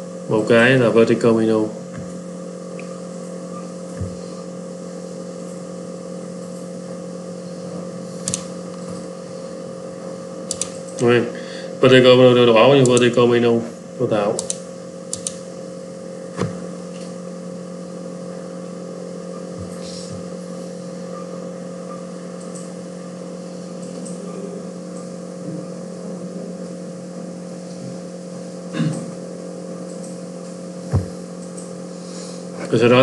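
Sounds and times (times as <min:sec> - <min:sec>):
steady two-tone hum: 0:00.0 - 0:33.0
short clicks: 0:10.5 - 0:11.1, 0:14.4 - 0:15.4.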